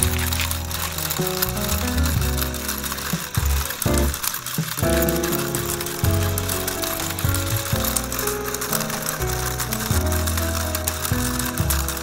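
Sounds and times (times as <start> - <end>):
simple toy melody: 0.0 - 12.0
toy gears clicking: 0.0 - 12.0.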